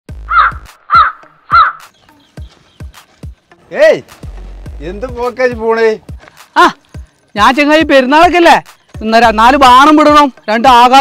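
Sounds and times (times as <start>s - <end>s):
crow cawing: 0.2s - 2.7s.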